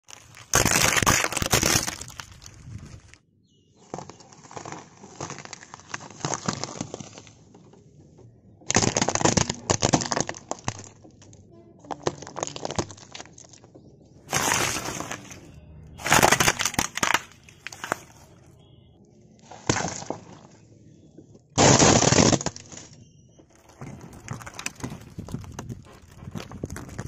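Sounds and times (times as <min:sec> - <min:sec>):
fruit squashing: 0:00.0 - 0:03.1, 0:08.6 - 0:18.7
plastic cracking: 0:00.0 - 0:03.2, 0:03.8 - 0:18.6, 0:19.6 - 0:27.0
car tyre crushing objects: 0:00.0 - 0:27.0.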